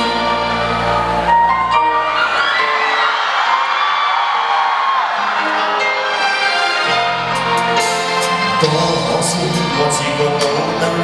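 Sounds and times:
live band playing: 0.0 - 3.5, 5.2 - 11.0
audience cheering: 0.1 - 8.2.

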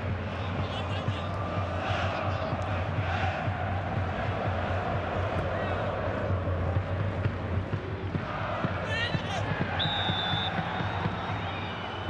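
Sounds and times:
drum beats: 0.0 - 12.0
stadium crowd noise: 0.0 - 12.0
crowd chanting: 0.3 - 11.3
referee's whistle blast: 9.8 - 10.9.

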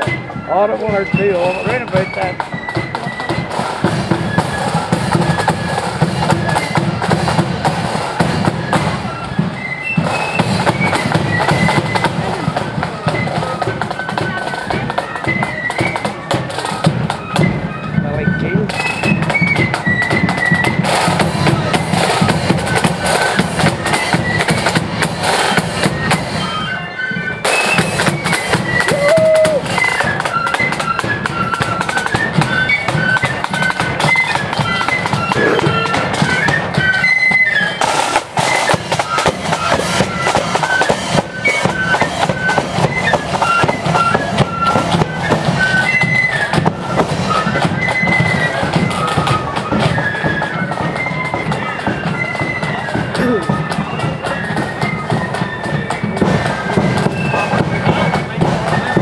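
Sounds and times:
flutes playing melody: 0.0 - 59.0
snare drums: 0.0 - 59.0
bass drum: 35.2 - 36.8.

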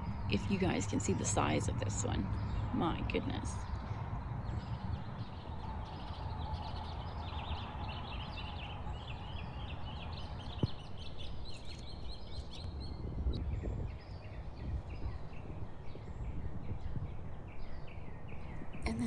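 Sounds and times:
low outdoor rumble: 0.0 - 11.0
birds chirping: 0.0 - 19.0.

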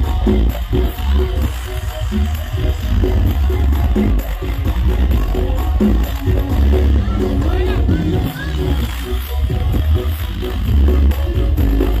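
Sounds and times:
loud music with booming bass: 0.0 - 12.0.

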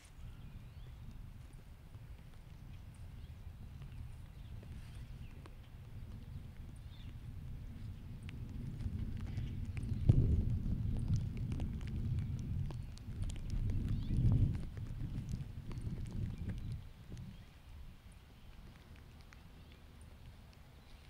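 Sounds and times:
wind buffeting microphone: 0.0 - 21.0
faint ticks: 0.8 - 21.0.

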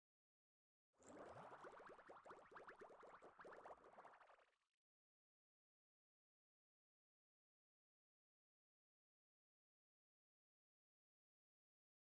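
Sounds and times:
rising bubbly blips: 1.1 - 4.4.

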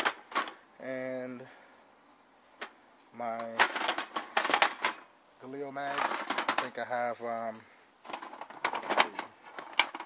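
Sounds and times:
rifle magazines clacking: 3.4 - 5.0, 5.9 - 6.8, 8.1 - 10.0.

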